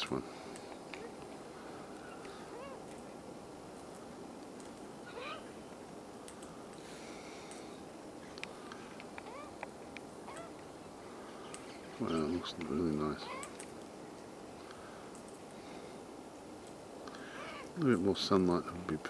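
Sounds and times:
outdoor background hiss: 0.0 - 19.0
light clicks: 3.8 - 4.9, 6.2 - 6.8.

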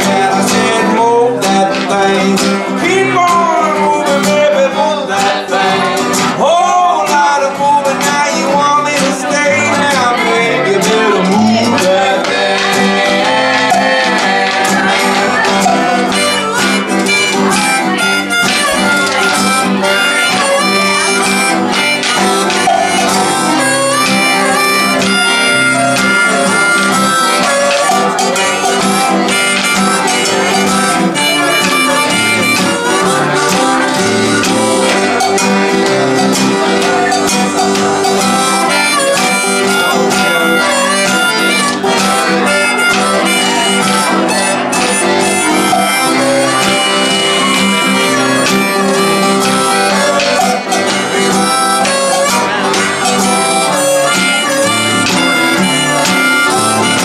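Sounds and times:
accordion: 0.0 - 57.0
harmonica lead: 0.0 - 57.0
strummed acoustic guitar: 0.0 - 57.0
percussion struck with sticks: 25.8 - 40.3.

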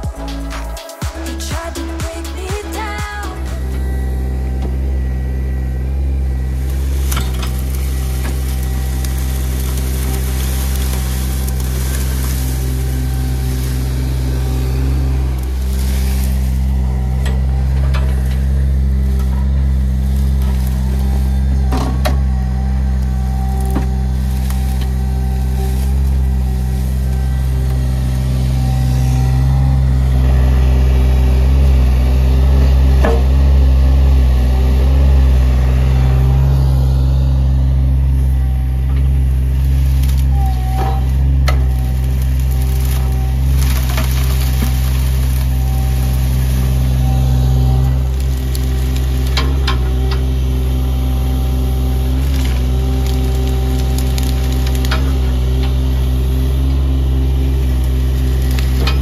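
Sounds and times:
excavator diesel engine running: 0.0 - 59.0
branches snapping: 6.6 - 29.5, 39.0 - 59.0.

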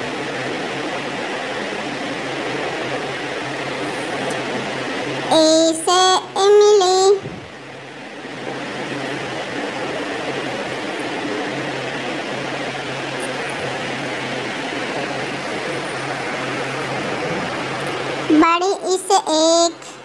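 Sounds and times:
steady rushing noise: 7.2 - 18.4.

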